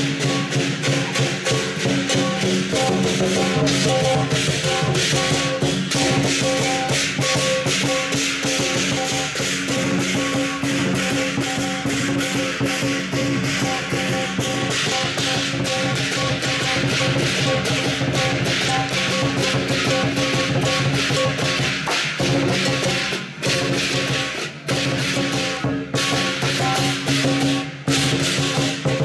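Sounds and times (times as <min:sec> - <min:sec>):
hand cymbals: 0:00.0 - 0:29.0
large drum beating: 0:00.0 - 0:29.0.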